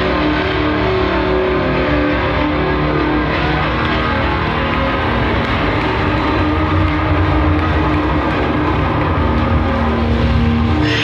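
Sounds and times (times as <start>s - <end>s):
distorted guitars: 0.0s - 11.0s.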